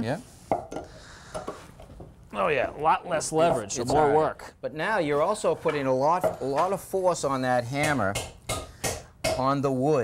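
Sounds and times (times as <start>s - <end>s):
hammer knocking on nail and wood: 7.8s - 9.6s.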